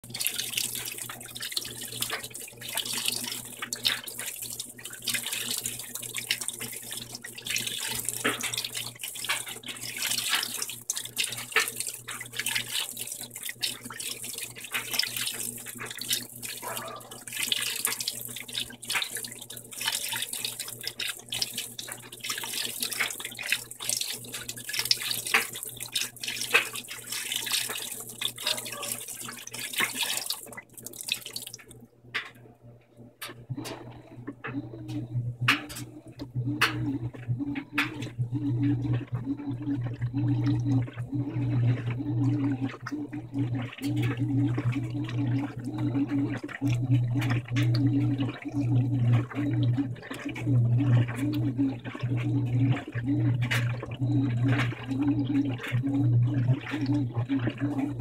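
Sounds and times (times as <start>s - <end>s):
water pouring and splashing: 0.0s - 32.4s, 33.5s - 58.0s
low steady hum: 30.2s - 58.0s.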